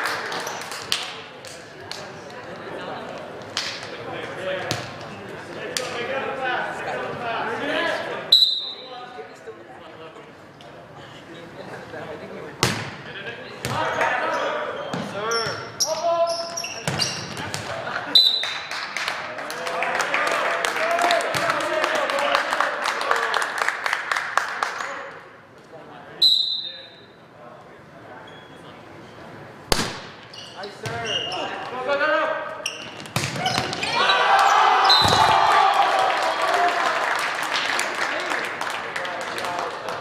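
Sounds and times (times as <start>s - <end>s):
referee's whistle blast: 26.2s - 26.9s, 34.9s - 35.3s.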